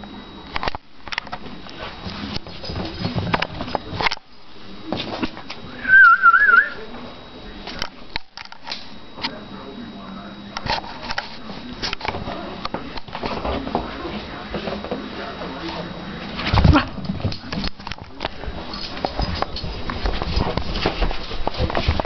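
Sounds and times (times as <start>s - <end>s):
short warbling whistle: 5.8s - 6.8s.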